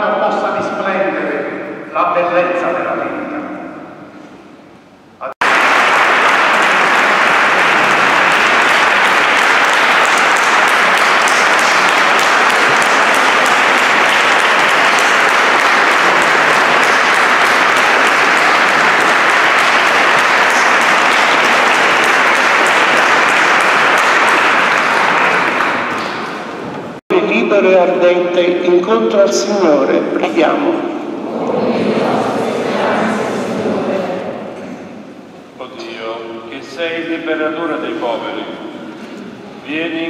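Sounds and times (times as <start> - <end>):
congregation applauding: 5.2 - 27.0.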